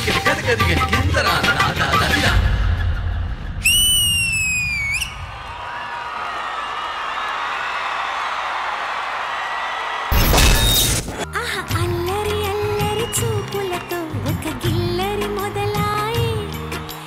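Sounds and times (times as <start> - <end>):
loud shrill whistle: 3.6 - 5.5
audience applause and cheering: 3.6 - 10.2, 11.1 - 17.0
dance music: 11.8 - 17.0.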